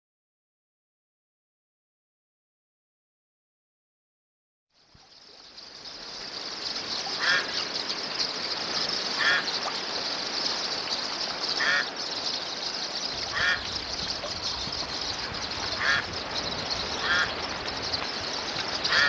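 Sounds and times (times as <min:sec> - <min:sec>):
high-pitched hiss: 0:04.8 - 0:19.0
animal calling: 0:07.2 - 0:07.6, 0:09.2 - 0:09.7, 0:11.5 - 0:12.0, 0:13.1 - 0:17.8, 0:18.4 - 0:19.0.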